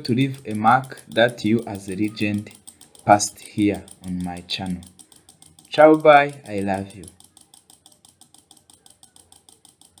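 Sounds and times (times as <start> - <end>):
relay clicking rapidly: 0.0 - 10.0.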